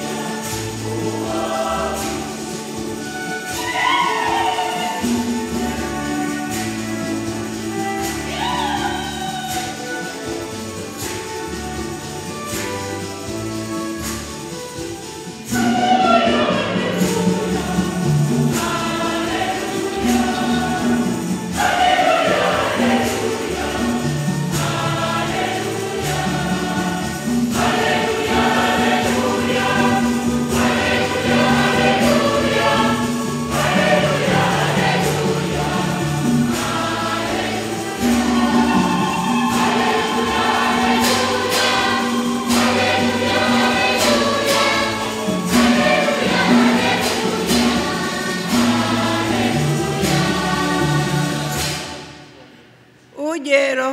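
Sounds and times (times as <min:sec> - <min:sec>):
choir singing a hymn: 0:00.0 - 0:52.6.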